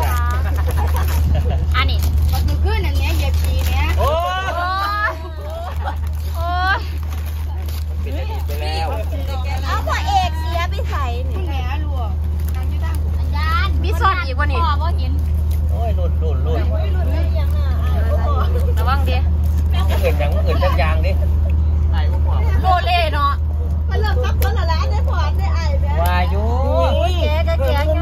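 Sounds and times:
people talking: 0.0 - 28.0
steady low rumble: 0.0 - 28.0.

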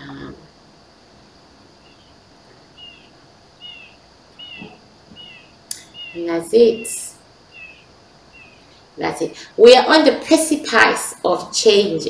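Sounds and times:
bird chirping: 1.7 - 9.4.

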